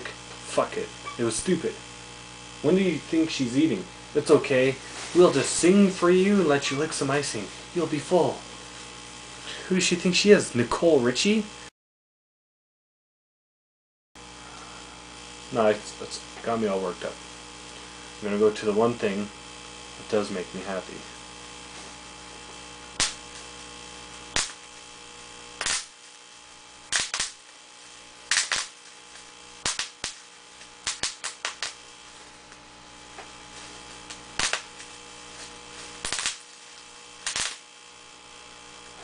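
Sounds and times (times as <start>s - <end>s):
electrical mains hum: 0.0s - 11.7s, 14.2s - 39.0s.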